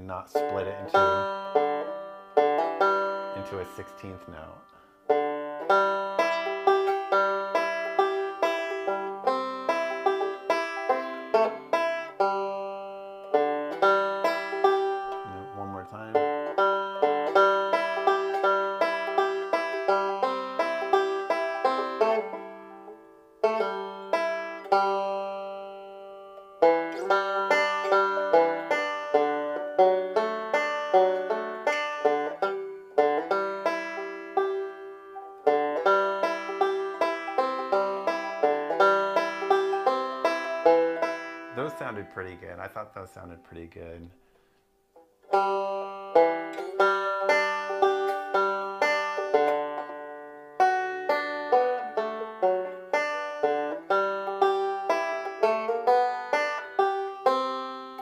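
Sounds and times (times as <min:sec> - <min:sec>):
banjo picking: 0:00.0 - 0:58.0.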